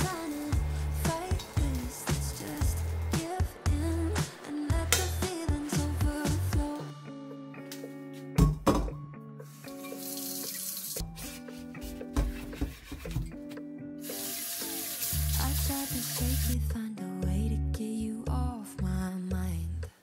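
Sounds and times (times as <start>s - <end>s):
soft background music: 0.0s - 20.0s
tap water running into sink: 9.7s - 11.0s, 14.1s - 16.6s.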